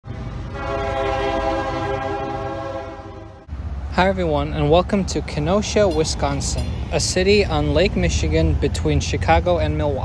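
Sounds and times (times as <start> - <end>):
train horn chord: 0.4 - 3.5.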